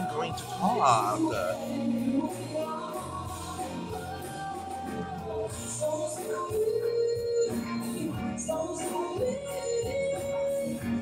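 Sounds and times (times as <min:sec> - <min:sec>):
band with guitar: 0:00.0 - 0:11.0
woman singing: 0:00.0 - 0:11.0.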